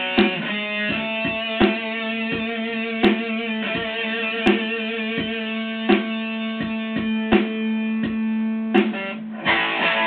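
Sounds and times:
electric guitar playing: 0.0 - 10.0.

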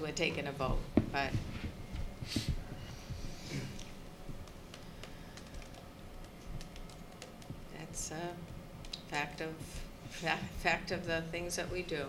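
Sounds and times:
computer keyboard typing: 4.4 - 7.8, 8.5 - 9.1.

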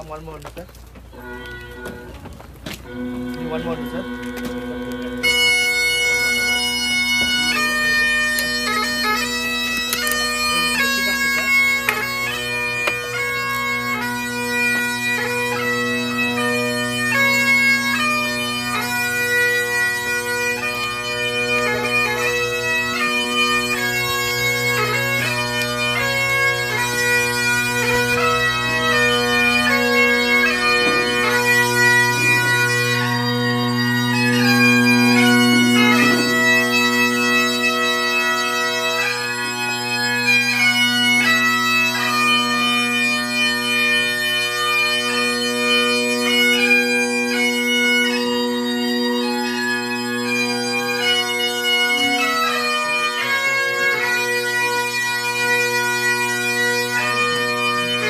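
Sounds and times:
bagpipes playing: 0.0 - 58.0.

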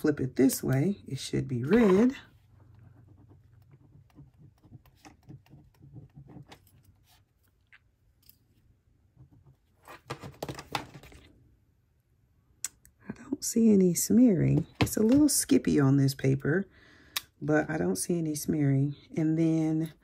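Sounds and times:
pen scratching on paper: 1.7 - 7.2.

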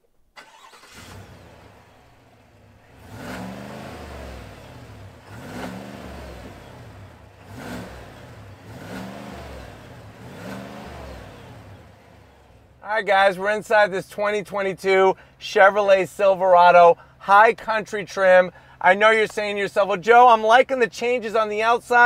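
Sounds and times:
truck engine starting and revving: 0.4 - 14.0.

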